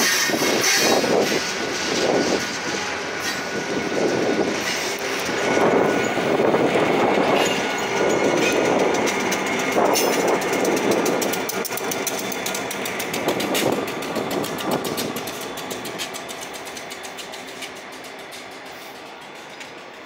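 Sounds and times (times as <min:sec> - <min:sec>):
diesel locomotives passing: 0:00.0 - 0:20.0
train wheels clicking over rail joints: 0:00.0 - 0:20.0.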